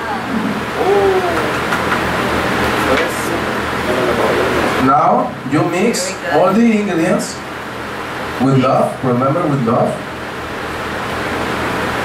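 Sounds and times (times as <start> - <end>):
electric fans rushing air: 0.0 - 12.0.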